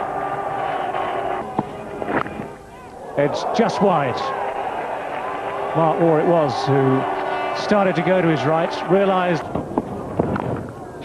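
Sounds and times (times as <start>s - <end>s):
stadium crowd hubbub: 0.0s - 11.0s.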